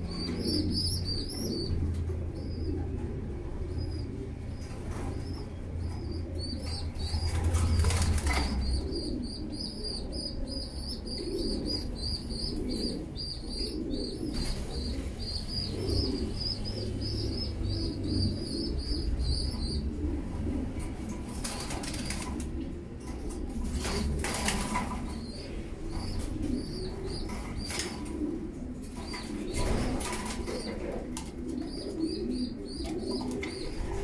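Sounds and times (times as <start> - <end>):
pigeons cooing: 0.0 - 34.0
wing flapping: 6.9 - 8.7, 21.3 - 22.6.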